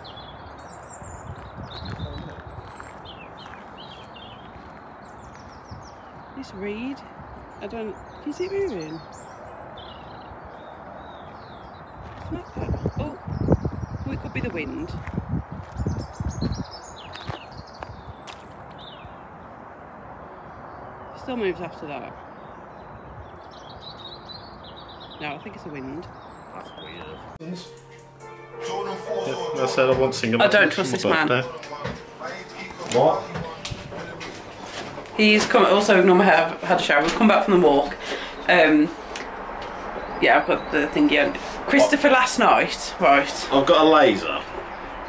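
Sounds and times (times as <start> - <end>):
small birds chirping: 0.0 - 28.2, 30.5 - 45.0
outdoor background rush: 0.0 - 45.0
wind rushing: 0.9 - 4.3, 11.8 - 20.3.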